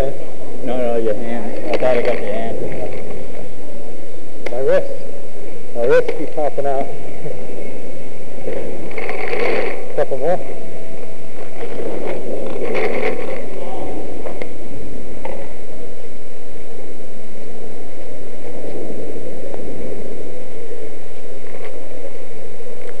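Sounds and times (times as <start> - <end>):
indistinct voices: 0.0 - 23.0
loud rumbling noise: 0.0 - 23.0.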